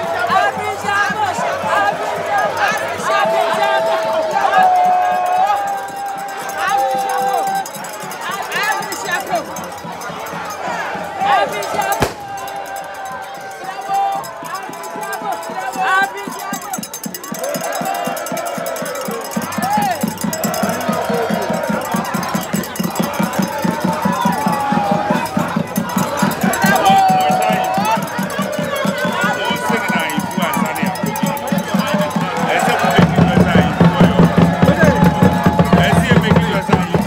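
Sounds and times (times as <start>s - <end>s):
crowd calling and chanting: 0.0s - 37.0s
hand drum beating: 31.0s - 37.0s.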